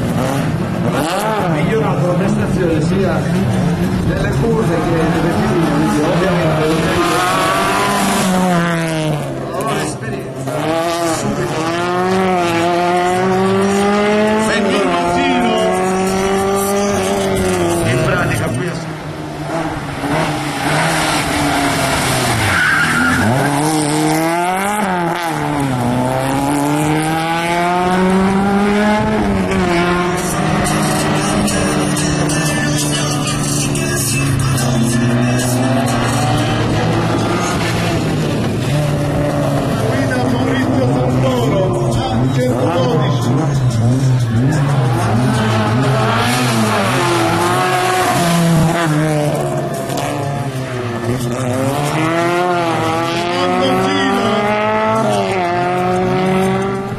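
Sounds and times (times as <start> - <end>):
race car engine revving: 0.0 - 56.9
tyre squeal: 22.2 - 23.9.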